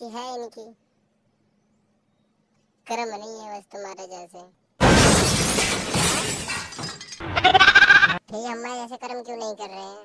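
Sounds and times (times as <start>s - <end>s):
loud noisy crash: 4.8s - 7.8s
wavering bleat-like cry: 7.3s - 8.2s.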